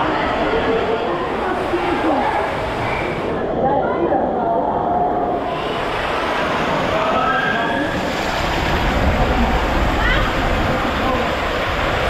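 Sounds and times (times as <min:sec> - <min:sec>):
water rushing down a waterslide: 0:00.0 - 0:12.0.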